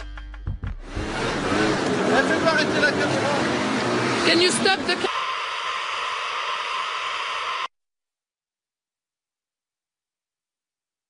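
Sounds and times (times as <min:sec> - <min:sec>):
tv static hiss: 0:05.0 - 0:07.7.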